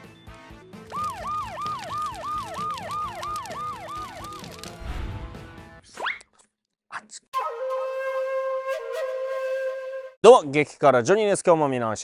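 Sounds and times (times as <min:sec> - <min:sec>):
background music: 0:00.0 - 0:06.1.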